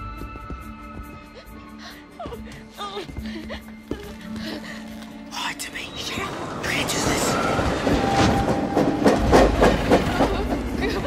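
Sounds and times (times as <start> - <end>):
train rumbling and clattering on rails: 5.3 - 11.0.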